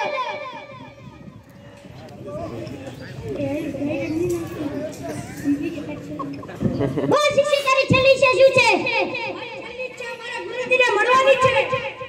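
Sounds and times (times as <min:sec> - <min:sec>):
children speaking: 0:00.0 - 0:01.5, 0:02.3 - 0:12.0.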